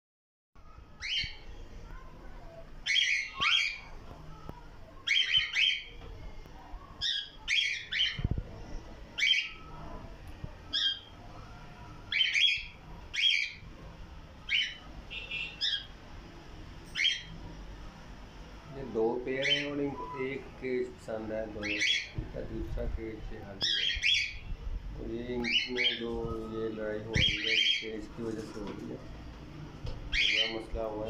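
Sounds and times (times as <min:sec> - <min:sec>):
cockatiels chirping: 0:02.8 - 0:03.9, 0:07.0 - 0:08.4, 0:10.7 - 0:11.1, 0:12.1 - 0:13.6, 0:14.5 - 0:15.9, 0:19.3 - 0:20.4, 0:21.6 - 0:22.2, 0:23.6 - 0:24.5, 0:25.4 - 0:28.0, 0:30.1 - 0:31.0.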